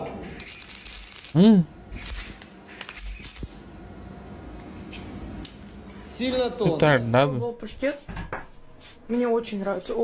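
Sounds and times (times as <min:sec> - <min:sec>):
welding arc crackling: 0:00.2 - 0:03.6.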